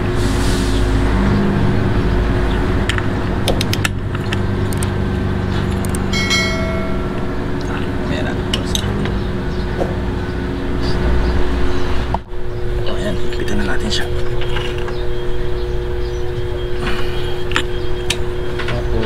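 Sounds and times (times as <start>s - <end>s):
engine and vehicle noise: 0.0s - 19.0s
brief ringing tone: 6.1s - 7.4s.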